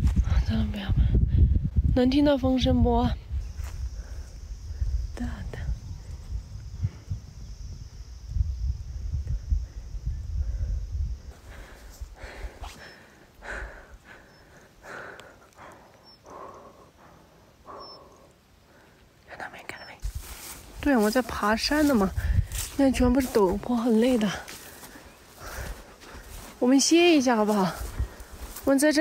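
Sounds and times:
wind buffeting microphone: 0:00.0 - 0:17.1, 0:19.9 - 0:29.0
faint whispery sounds: 0:09.2 - 0:29.0.

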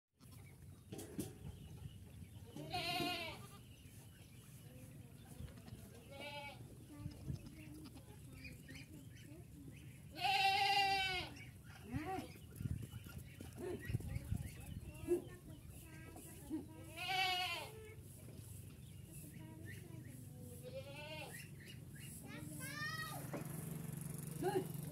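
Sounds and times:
goats bleating: 0:02.6 - 0:03.6, 0:05.6 - 0:06.6, 0:10.1 - 0:12.3, 0:16.9 - 0:17.8, 0:20.6 - 0:21.5.

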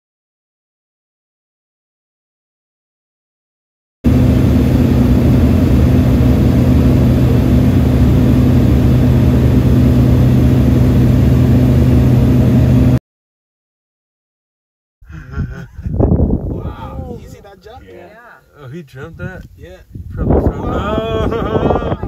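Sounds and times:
propeller plane cabin drone: 0:04.0 - 0:13.0.

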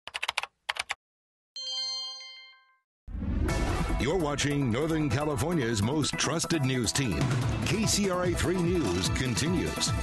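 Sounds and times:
bright chime: 0:01.6 - 0:02.8
news station music: 0:03.1 - 0:10.0.

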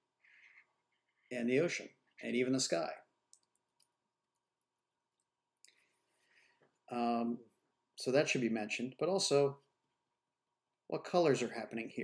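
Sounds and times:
person speaking: 0:01.1 - 0:03.6, 0:06.8 - 0:09.7
faint clicks: 0:03.3 - 0:04.5.

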